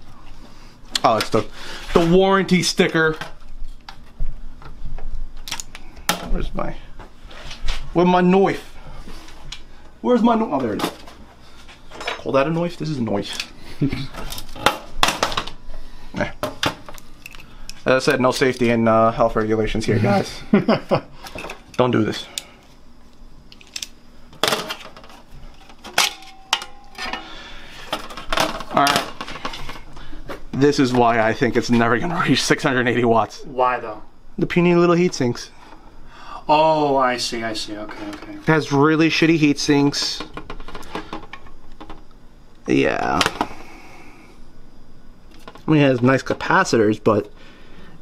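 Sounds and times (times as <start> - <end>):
sheet metal casing clanking: 25.9 - 29.6.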